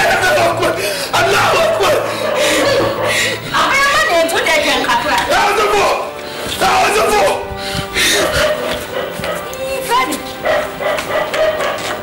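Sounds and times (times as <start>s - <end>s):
background music: 0.0s - 12.0s
dog barking and yelping: 0.2s - 6.0s, 8.0s - 12.0s.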